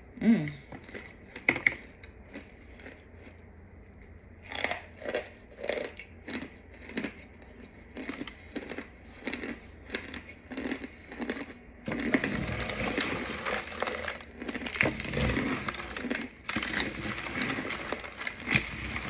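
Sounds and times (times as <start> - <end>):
crunchy powder crunching: 11.9 - 19.0.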